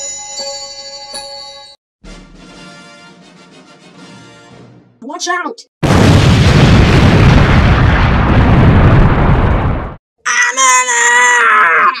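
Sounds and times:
rumbling explosion: 5.8s - 10.0s.

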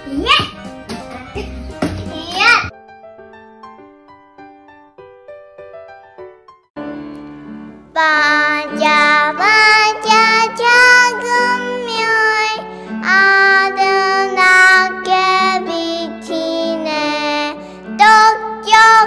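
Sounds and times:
instrumental accompaniment: 0.0s - 11.4s
child singing: 8.0s - 19.0s.

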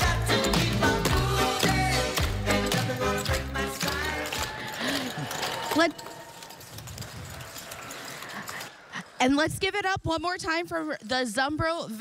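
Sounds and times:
upbeat music: 0.0s - 6.1s
audience cheering and clapping: 0.1s - 8.8s.

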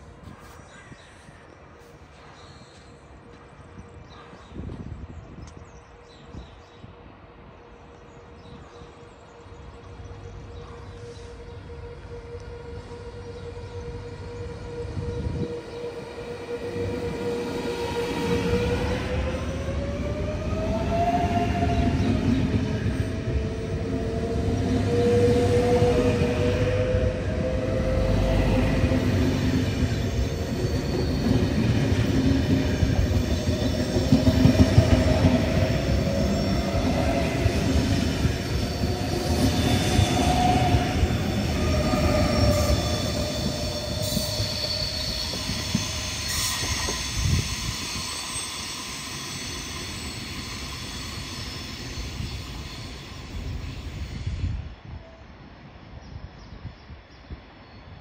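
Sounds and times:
train running and wheel noise: 0.0s - 58.0s
train whine: 6.8s - 56.2s.

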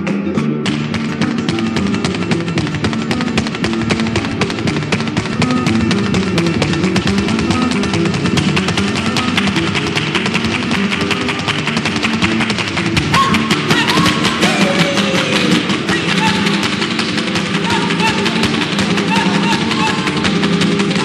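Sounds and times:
flamenco guitar: 0.0s - 21.0s
rapid percussive strikes: 0.6s - 21.0s
gliding vocal calls: 13.0s - 21.0s.

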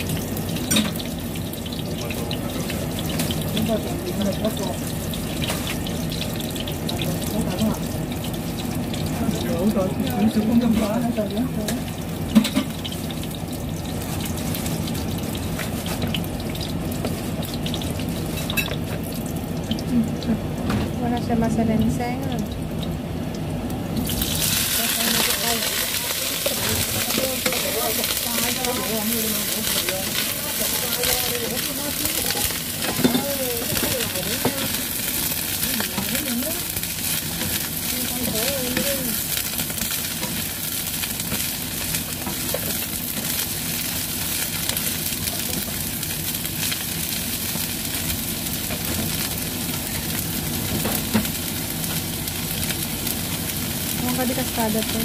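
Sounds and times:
garlic frying in oil: 0.0s - 55.0s
vegetables sizzling in hot oil: 0.0s - 55.0s
wooden spatula stirring in wok: 24.7s - 52.1s.

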